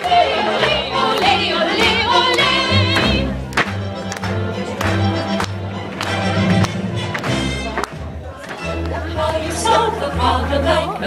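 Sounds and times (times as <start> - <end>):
group of voices singing: 0.0 - 3.6, 8.2 - 11.0
low instrumental accompaniment: 0.0 - 11.0.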